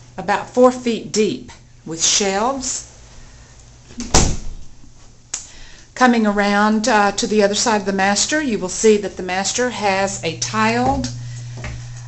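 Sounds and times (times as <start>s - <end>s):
door thump: 4.0s - 4.6s.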